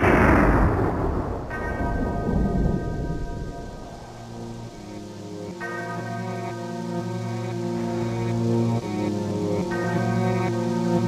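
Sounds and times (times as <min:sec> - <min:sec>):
rolling thunder: 0:00.0 - 0:05.0
rain hiss: 0:00.0 - 0:11.0
music with sustained chords: 0:01.4 - 0:11.0.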